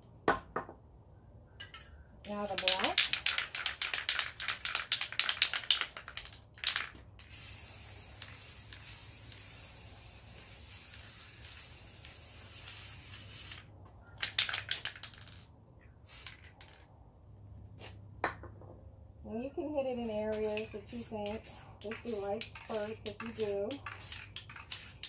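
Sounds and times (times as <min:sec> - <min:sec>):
spray can ball rattling: 0:02.2 - 0:17.0, 0:20.3 - 0:25.0
spray can hissing: 0:02.4 - 0:15.4, 0:16.1 - 0:16.8, 0:20.3 - 0:25.0.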